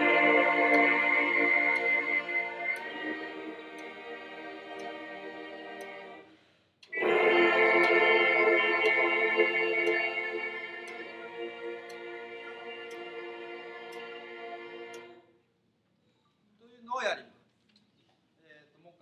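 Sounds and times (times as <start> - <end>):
metronome ticking: 0.0 - 5.9, 6.8 - 15.2.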